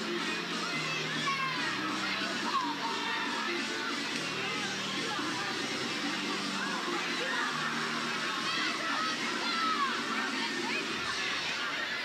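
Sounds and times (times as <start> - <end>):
high-pitched shouts: 0.0 - 3.9, 6.5 - 12.0
crowd chatter: 0.0 - 12.0
music over loudspeakers: 0.0 - 12.0.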